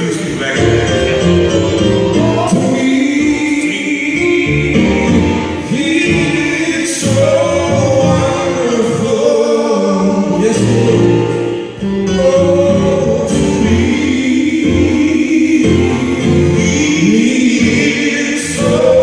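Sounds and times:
electronic keyboard: 0.0s - 19.0s
men singing gospel: 0.0s - 19.0s.

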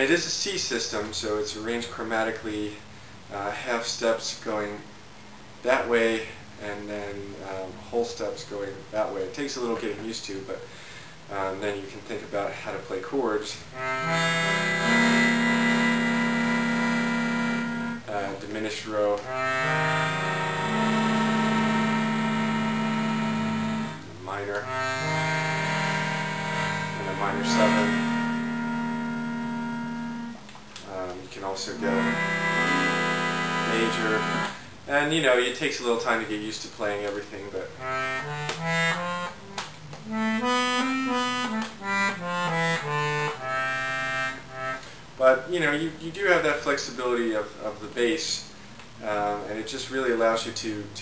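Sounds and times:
accordion playing a chord: 13.7s - 18.1s, 19.2s - 30.5s, 31.6s - 34.7s, 37.8s - 44.9s.

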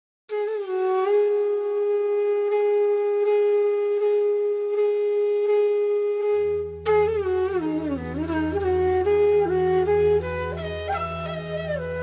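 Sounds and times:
wind instrument melody: 0.3s - 12.0s.

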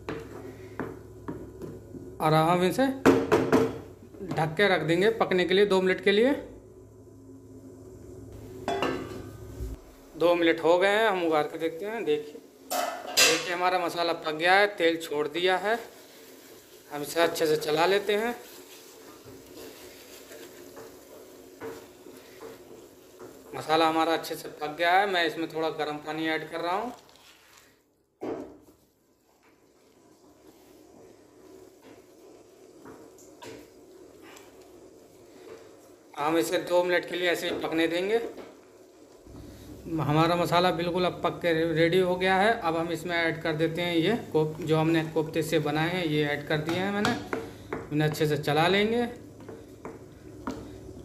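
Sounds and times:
wooden spatula stirring gravy: 15.8s - 24.4s, 26.4s - 27.8s, 28.6s - 41.5s, 43.0s - 51.0s.

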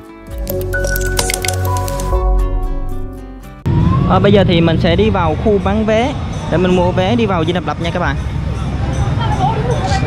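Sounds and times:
logo intro music with bass: 0.1s - 4.4s.

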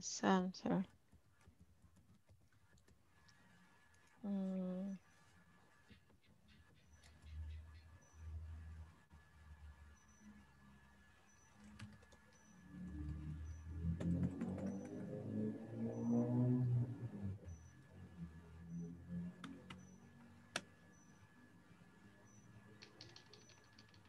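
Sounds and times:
person humming quietly: 4.2s - 5.0s.

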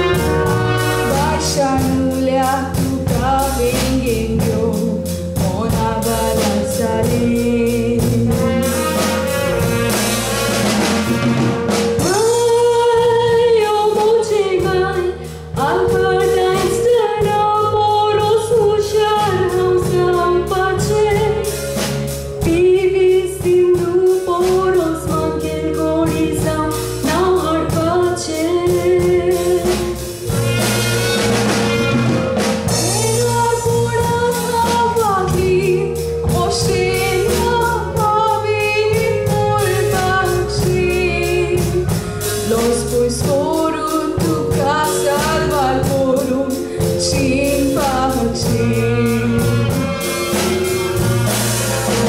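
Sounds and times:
backing instruments: 0.0s - 52.0s
regular drum beat: 0.0s - 52.0s
steady bass: 0.0s - 52.0s
woman singing into microphone: 1.0s - 8.5s, 12.0s - 21.5s, 22.4s - 30.0s, 32.7s - 50.0s.

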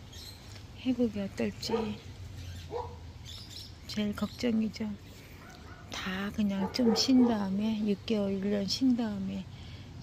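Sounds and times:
birds chirping: 0.0s - 9.4s.

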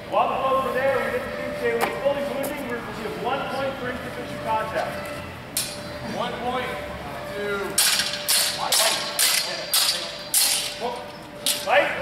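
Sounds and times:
voices talking in a hall: 0.0s - 12.0s.

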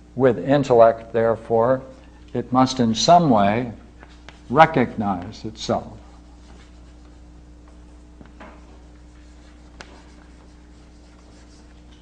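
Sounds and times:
low electrical hum: 0.0s - 12.0s
chalk tap: 4.2s - 4.5s, 8.2s - 12.0s
chalk scratching on blackboard: 6.0s - 7.4s, 8.8s - 12.0s.

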